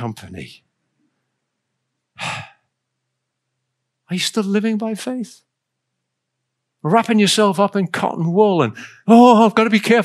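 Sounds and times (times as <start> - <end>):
man sighing: 2.2 - 2.5.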